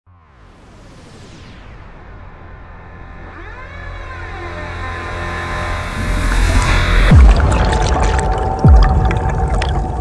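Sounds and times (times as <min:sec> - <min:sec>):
synthesized riser effect: 0:00.1 - 0:08.4
low rumble: 0:00.8 - 0:10.0.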